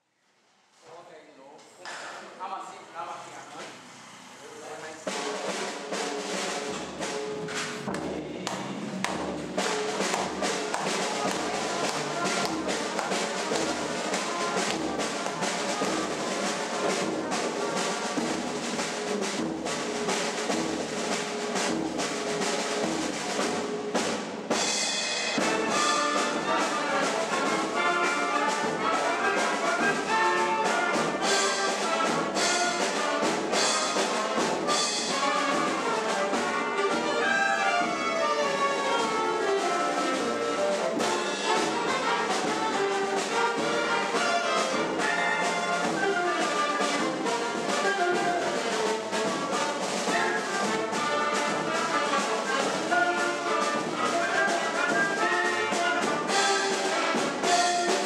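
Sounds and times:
brass band playing: 0:04.0 - 0:58.0
low drum beat: 0:05.0 - 0:58.0.

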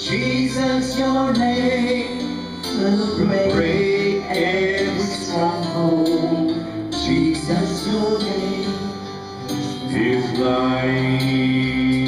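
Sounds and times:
man singing worship song: 0:00.0 - 0:12.0.

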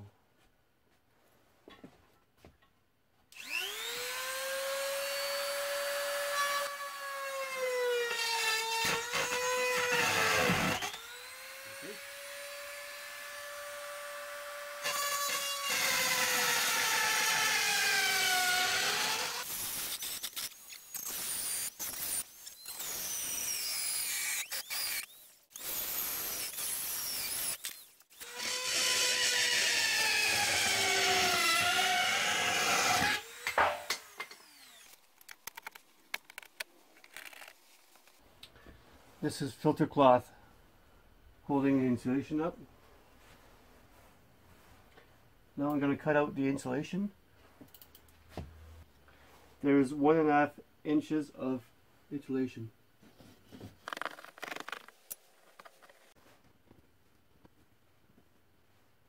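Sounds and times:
rotary tool whining cutting wood: 0:03.3 - 0:38.2.

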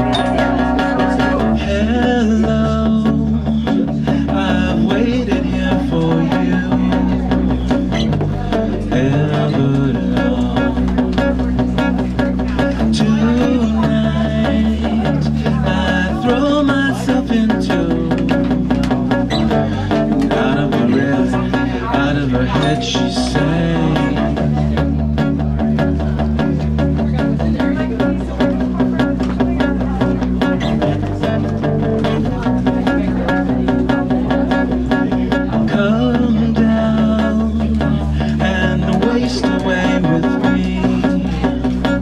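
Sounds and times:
electric bass: 0:00.0 - 0:42.0
strummed acoustic guitar: 0:00.0 - 0:42.0.

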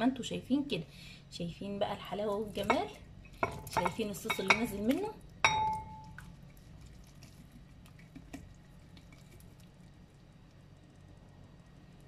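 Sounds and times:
glass jar clinking on bowl: 0:03.4 - 0:04.8, 0:05.4 - 0:06.2.

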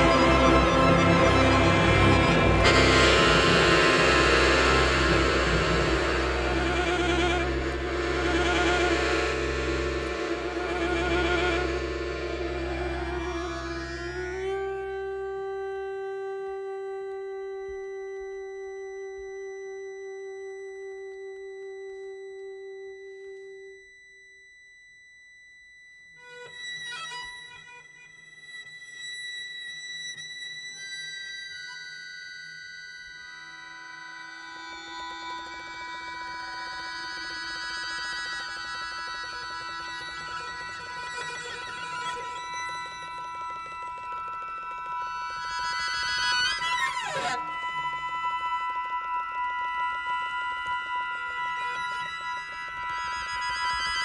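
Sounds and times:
chamber music with electronics: 0:00.0 - 0:24.4, 0:25.7 - 0:54.0.

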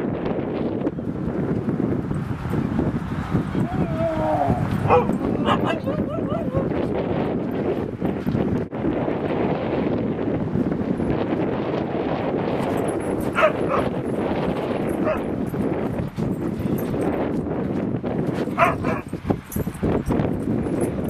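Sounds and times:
huskies yipping and whining: 0:03.8 - 0:06.8, 0:12.7 - 0:15.6, 0:18.4 - 0:19.1.

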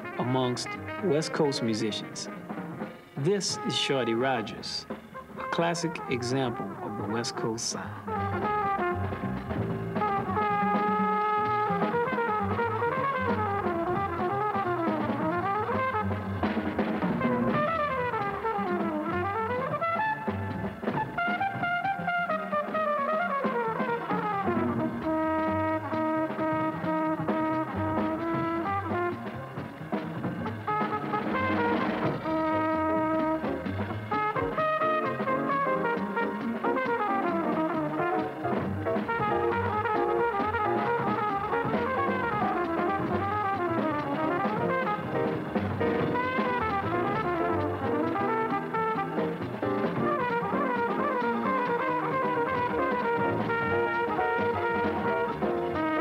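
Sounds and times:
flugelhorn jazz solo: 0:00.0 - 0:56.0.

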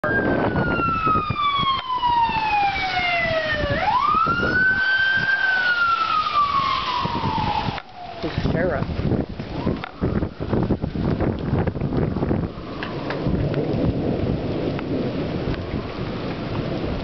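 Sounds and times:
police siren wailing: 0:00.0 - 0:14.0, 0:15.2 - 0:17.0.

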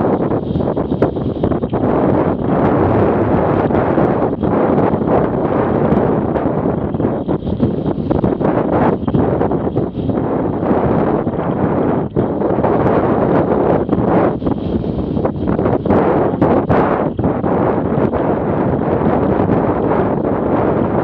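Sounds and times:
wind roaring over microphone: 0:00.0 - 0:21.0.

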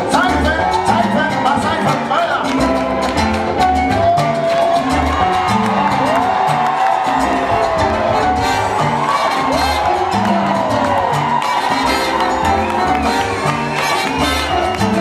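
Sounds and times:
salsa band playing: 0:00.0 - 0:15.0
crowd cheering: 0:00.1 - 0:15.0.

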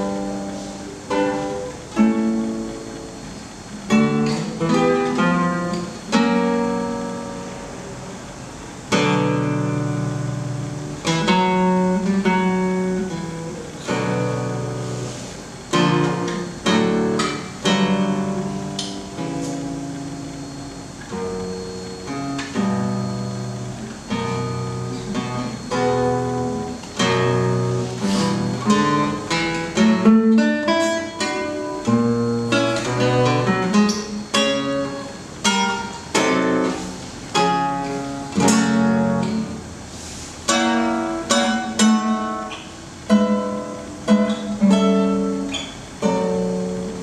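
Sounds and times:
classical guitar playing: 0:00.0 - 0:47.0.

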